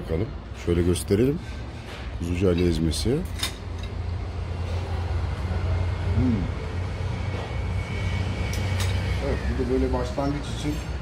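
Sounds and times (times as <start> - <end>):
voice humming: 6.1 - 6.6.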